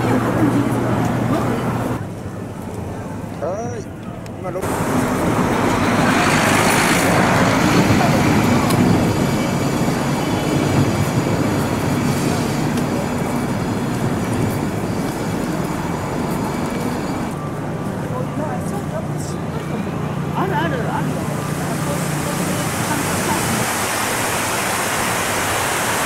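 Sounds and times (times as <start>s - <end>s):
passing traffic: 0.0s - 26.0s.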